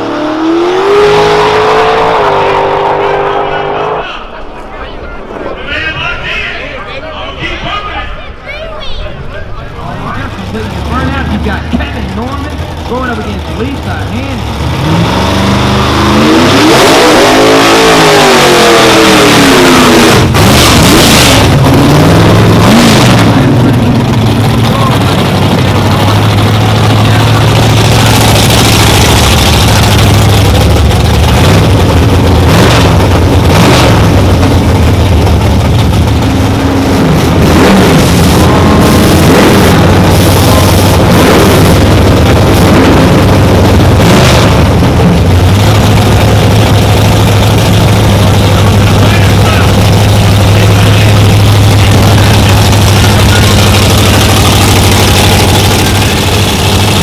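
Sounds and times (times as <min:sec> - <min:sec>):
race car engines at high revs: 0:00.0 - 0:04.4, 0:09.8 - 0:57.0.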